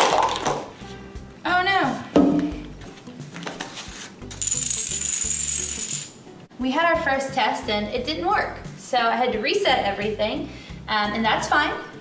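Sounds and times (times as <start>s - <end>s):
background music: 0.0s - 12.0s
high shaker-like rattle: 4.3s - 6.2s.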